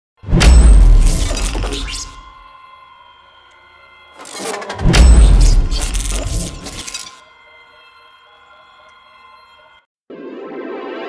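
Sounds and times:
heavy bass hit: 0.3 - 2.2, 4.8 - 5.9
steady ringing tone: 0.4 - 9.9.

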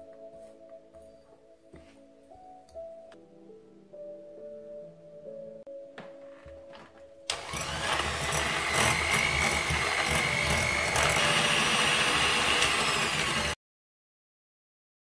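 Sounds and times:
electric hand mixer whining: 7.3 - 13.6.

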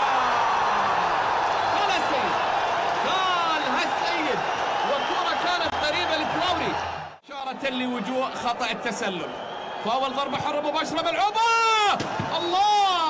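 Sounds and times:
individual crowd shouts: 0.0 - 7.2, 11.0 - 13.0
stadium crowd roar: 0.0 - 13.0.

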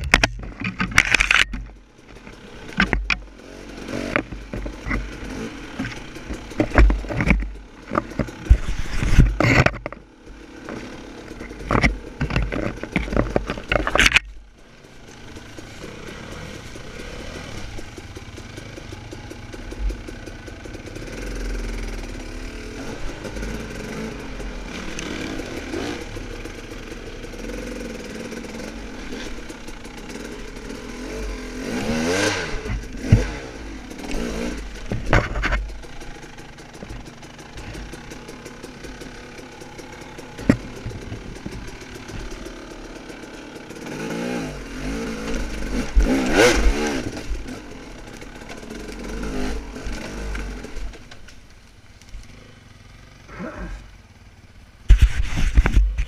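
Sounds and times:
dirt bike engine revving: 0.0 - 51.1
bike knocking on rocks: 5.8 - 10.0, 10.6 - 14.4.

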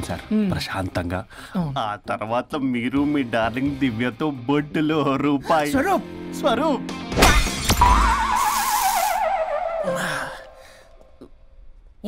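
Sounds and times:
film music: 2.1 - 11.0
sharp hits: 7.0 - 9.3
breaking glass crash: 7.2 - 8.8
wavering falling cry: 7.8 - 10.6.

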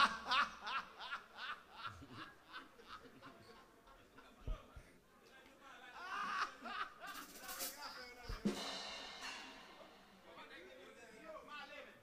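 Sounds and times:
man laughing loudly: 0.0 - 3.0.

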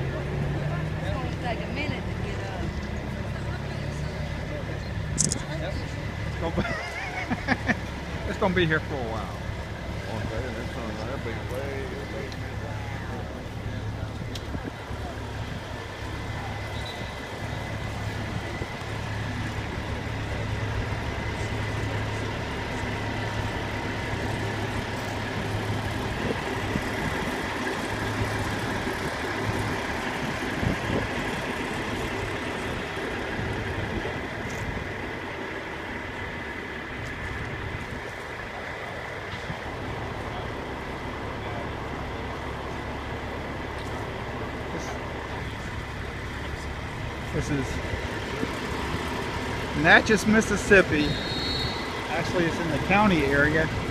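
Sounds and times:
diesel engines idling: 0.0 - 53.9.

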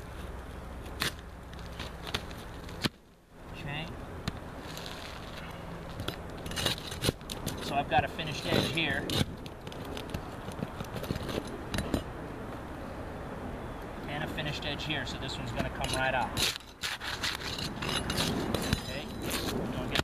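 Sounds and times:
metal tool scraping shingles: 4.6 - 12.1, 15.5 - 20.0.

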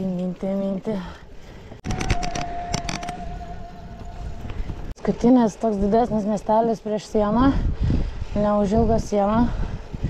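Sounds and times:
wind and road noise: 0.0 - 10.0
sharp clicks: 1.8 - 3.2.

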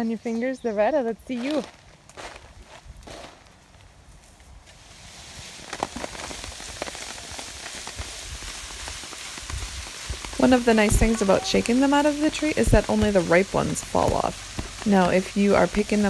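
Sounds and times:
leaves rustling: 0.0 - 16.0
berries pattering onto a tarp: 1.1 - 16.0.

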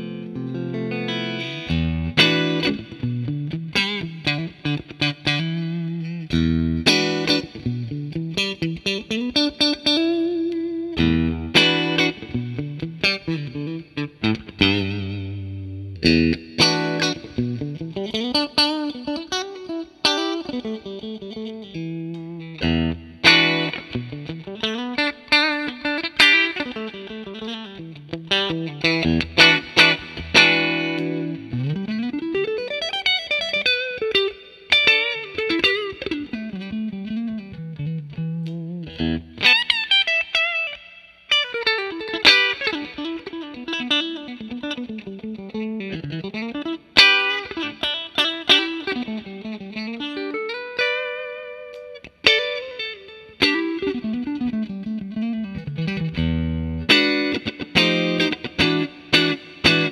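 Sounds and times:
clean electric guitar: 0.0 - 59.9.

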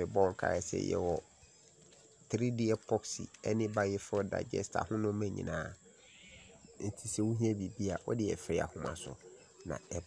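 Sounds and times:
man talking: 0.0 - 1.2, 2.3 - 5.8, 6.8 - 10.0.

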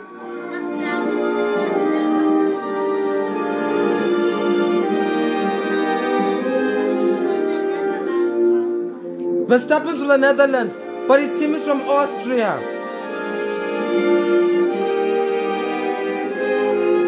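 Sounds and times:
orchestral anthem through tv speaker: 0.0 - 17.0.

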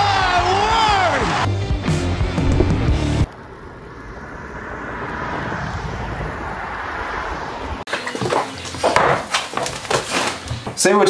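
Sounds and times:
wind rushing over microphone: 2.4 - 7.9.

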